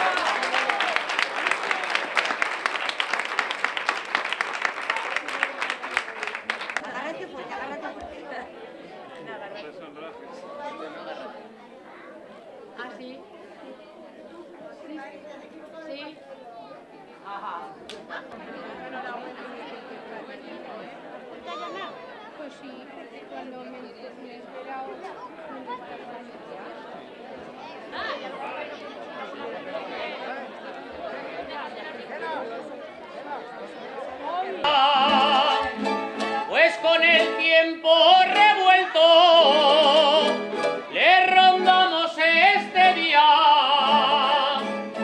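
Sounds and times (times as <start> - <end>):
crowd chatting: 0.0 - 45.0
plucked string instruments: 34.6 - 45.0.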